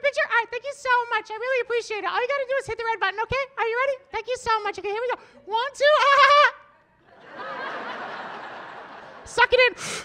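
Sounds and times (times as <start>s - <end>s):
audience laughing: 7.0s - 9.4s.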